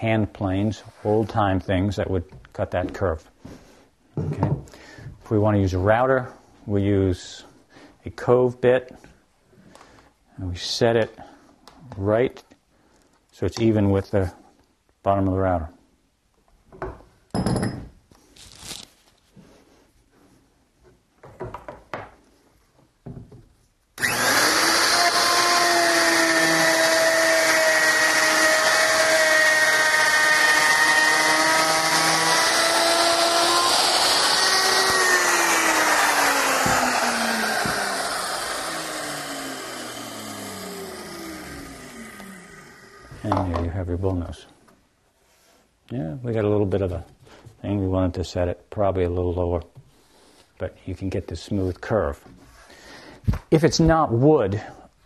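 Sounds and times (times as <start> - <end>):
router knocking: 24.0 - 43.6.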